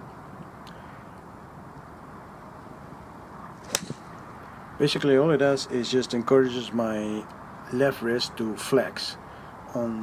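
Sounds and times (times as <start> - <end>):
golf club striking ball: 3.6 - 4.5.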